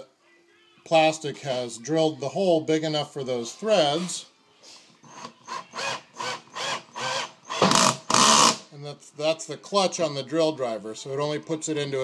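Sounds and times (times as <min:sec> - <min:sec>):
drill clutch slipping: 0:05.1 - 0:08.6.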